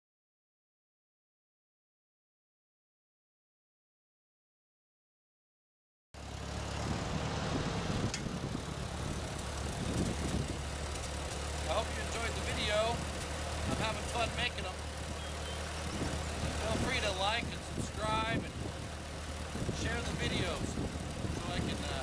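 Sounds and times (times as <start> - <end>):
tractor engine running: 6.2 - 22.0.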